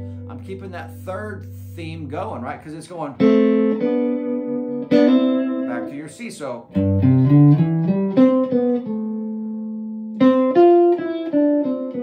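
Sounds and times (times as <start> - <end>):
clean electric guitar melody: 0.0 - 12.0.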